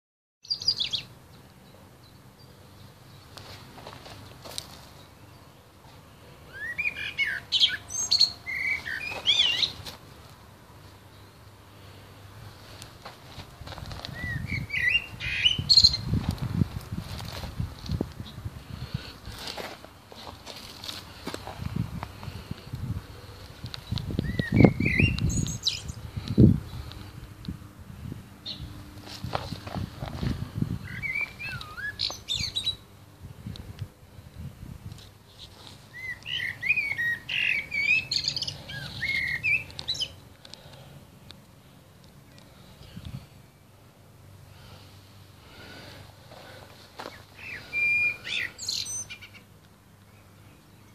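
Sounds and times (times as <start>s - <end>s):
songbird singing: 0.4s - 27.6s, 28.4s - 50.9s.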